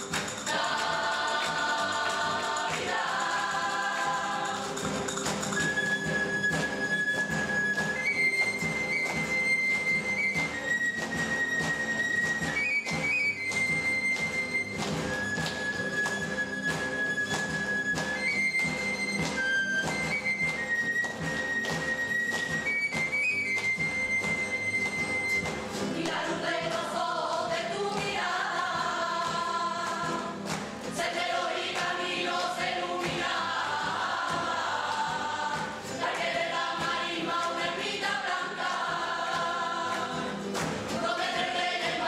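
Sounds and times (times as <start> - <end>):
steady percussion beat: 0.0 - 9.5.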